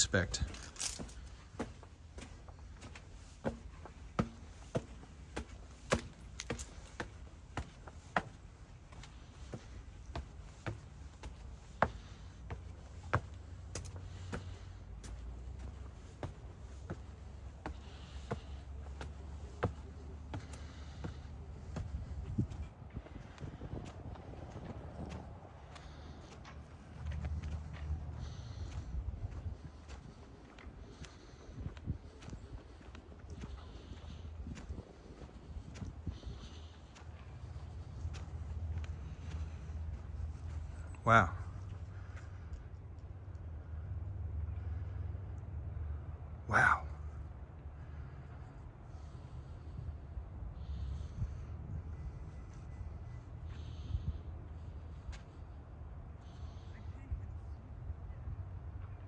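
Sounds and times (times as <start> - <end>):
footsteps on stone stairs: 0.3 - 40.7.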